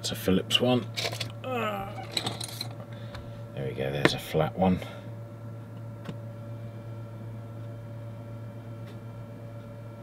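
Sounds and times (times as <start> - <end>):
steady low hum: 0.0 - 10.0
falling vocal murmur: 1.4 - 2.1.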